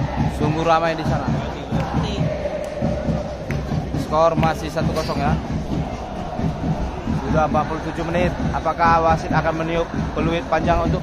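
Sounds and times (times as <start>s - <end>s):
crowd singing and chanting: 0.0s - 11.0s
regular low beat: 0.0s - 11.0s.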